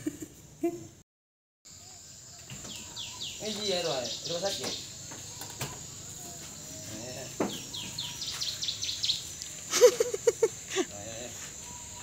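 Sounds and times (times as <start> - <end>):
bird chirping: 1.7 - 12.0
high-pitched insect drone: 1.7 - 12.0.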